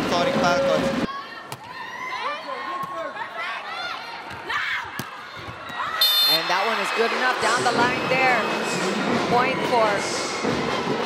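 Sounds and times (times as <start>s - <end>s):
crowd: 0.0s - 11.0s
loud arena noise: 0.0s - 11.0s.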